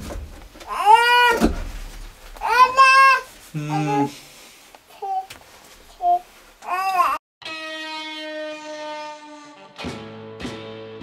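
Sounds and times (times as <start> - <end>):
child's high-pitched voice: 0.7 - 1.4, 2.4 - 4.2, 4.9 - 5.4, 6.0 - 7.2
man humming: 3.5 - 4.3.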